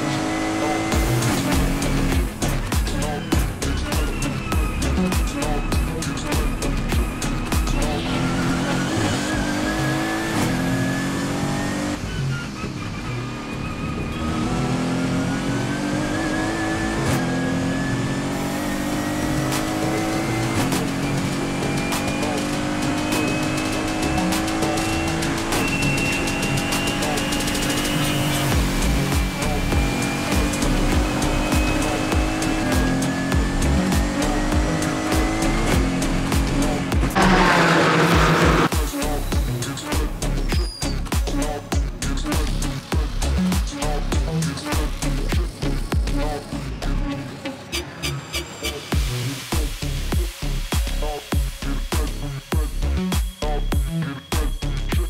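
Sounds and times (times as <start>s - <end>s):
car engine at full throttle: 0.0s - 55.0s.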